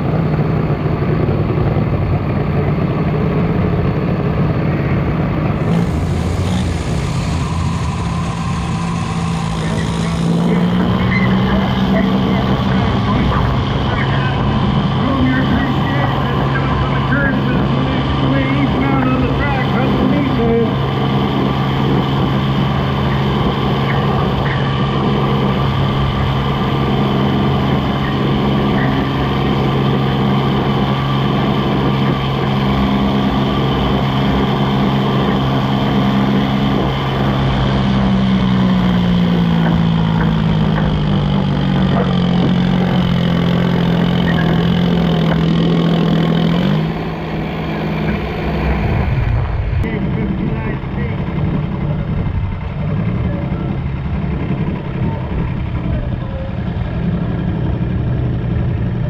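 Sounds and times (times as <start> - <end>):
diesel tractor engine under load: 0.0 - 59.0.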